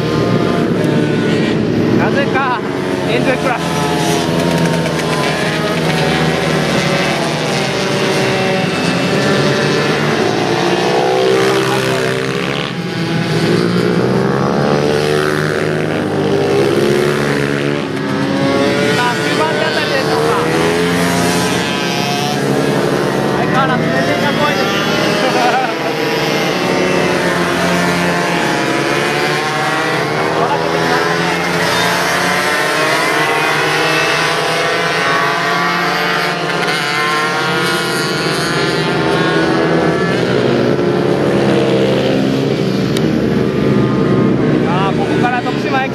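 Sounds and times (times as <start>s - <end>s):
racing motorcycles revving: 0.0s - 45.9s.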